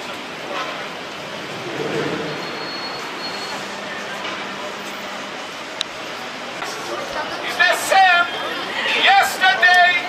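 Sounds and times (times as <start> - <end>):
passing vehicles hiss: 0.0 - 9.9
high-pitched squeal: 1.3 - 4.3.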